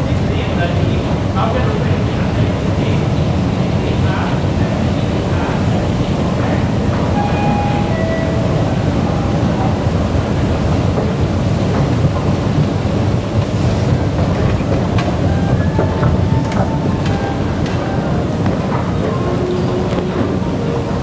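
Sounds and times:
escalator rumbling: 0.0s - 21.0s.

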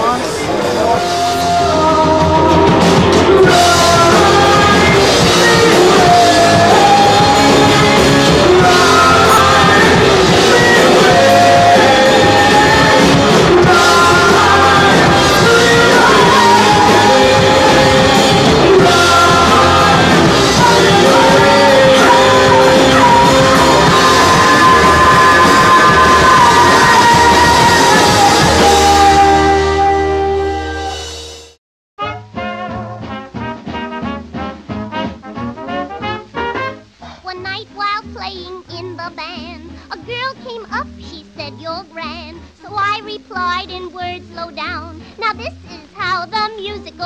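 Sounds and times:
drum kit: 0.0s - 37.4s
electric guitar: 0.0s - 38.3s
live rock band playing: 0.0s - 47.0s
woman singing: 1.2s - 30.2s, 37.2s - 47.0s.

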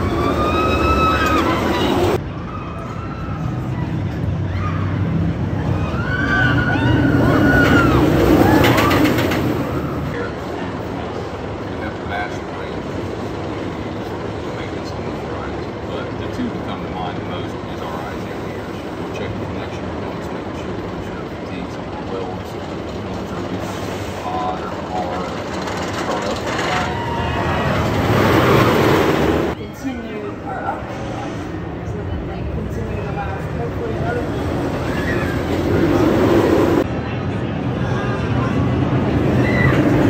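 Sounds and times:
riders screaming: 0.0s - 10.1s, 26.3s - 29.0s, 34.7s - 36.2s, 39.2s - 40.0s
roller coaster train rumbling past: 0.0s - 40.0s.

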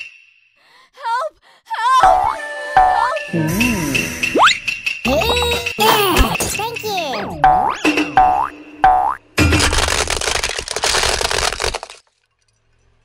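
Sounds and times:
cartoon springy boings: 2.0s - 9.2s
plastic toys cracking and crunching: 9.4s - 12.4s.

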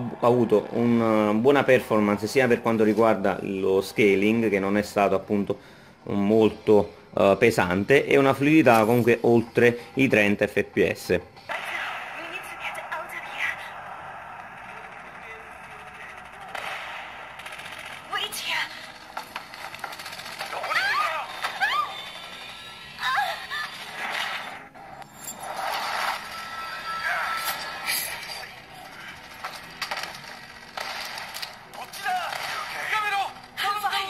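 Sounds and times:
game ambience from phone speaker: 8.0s - 34.0s
short sharp cracks: 29.5s - 33.6s.

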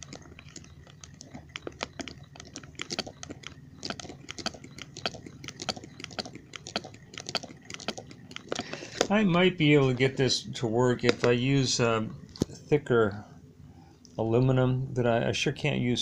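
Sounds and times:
small engine clicks and knocks: 0.0s - 9.2s, 11.0s - 11.4s.

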